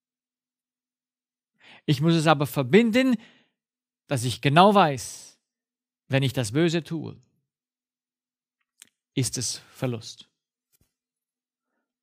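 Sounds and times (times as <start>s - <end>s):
man speaking: 1.9s - 3.2s, 9.2s - 10.2s.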